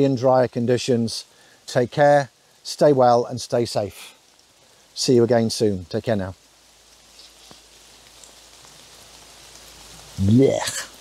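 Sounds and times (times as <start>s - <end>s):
rain on leaves: 0.0s - 11.0s.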